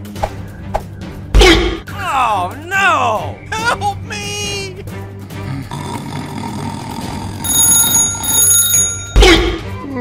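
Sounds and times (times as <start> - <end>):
background music: 0.0 - 10.0
electronic ringing alarm: 7.4 - 9.2.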